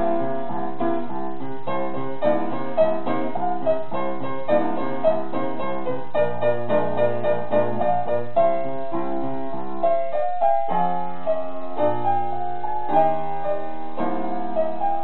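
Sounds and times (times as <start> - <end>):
piano played four hands: 0.0 - 15.0.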